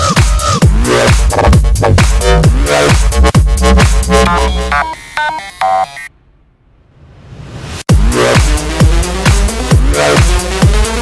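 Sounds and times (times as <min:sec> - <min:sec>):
synth lead notes: 0:02.2 - 0:06.1.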